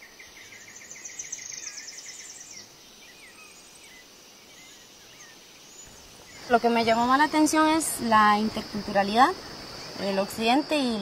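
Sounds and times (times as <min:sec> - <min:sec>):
birds chirping: 0:00.0 - 0:11.0
outdoor hiss: 0:00.0 - 0:11.0.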